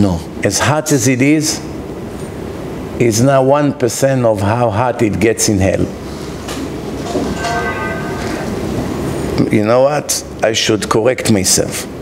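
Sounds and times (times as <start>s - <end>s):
room noise hiss: 0.0s - 12.0s
faint held tone: 7.0s - 9.3s.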